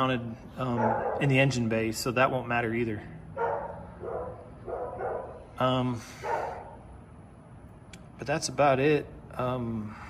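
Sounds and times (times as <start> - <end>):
dog barking: 0.7 - 1.5, 3.4 - 5.4, 6.2 - 6.8.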